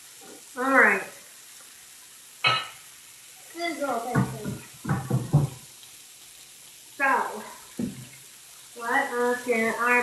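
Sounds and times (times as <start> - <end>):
bacon sizzling on a griddle: 0.0 - 10.0.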